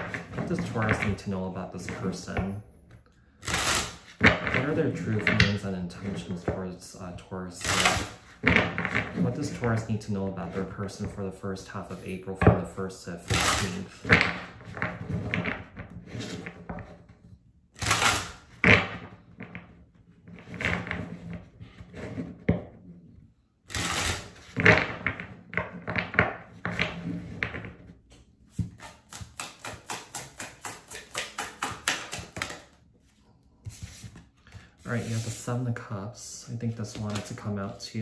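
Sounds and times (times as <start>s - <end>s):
cards slapping and riffling: 28.5s - 35.3s, 36.9s - 37.4s.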